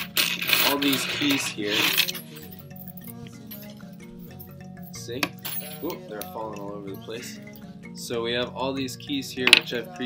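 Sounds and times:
metal keys clinking: 0:00.0 - 0:06.4
background music: 0:00.0 - 0:10.0.

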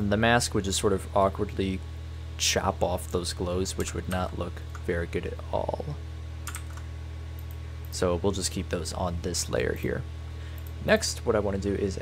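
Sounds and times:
steady low hum: 0:00.0 - 0:12.0
computer keyboard clicks: 0:06.4 - 0:06.8.

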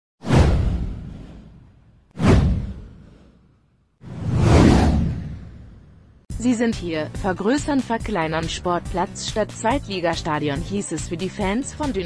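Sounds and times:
whoosh with low boom: 0:00.2 - 0:06.3.

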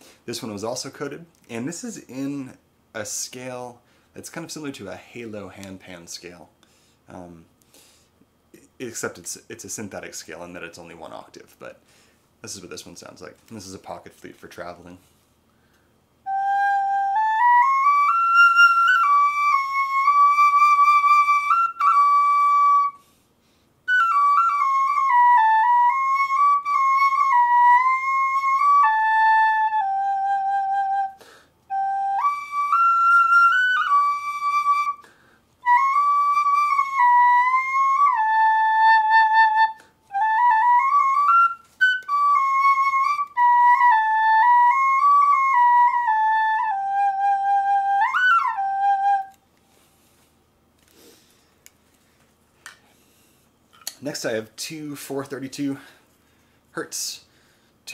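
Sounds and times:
small flute playing slow melody: 0:16.2 - 0:23.2, 0:23.9 - 0:49.4.

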